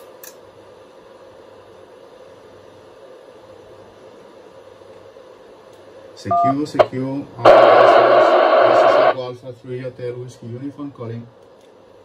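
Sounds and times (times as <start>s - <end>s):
faint low hum: 6.0s - 12.0s
radio receiver hiss: 6.7s - 9.2s.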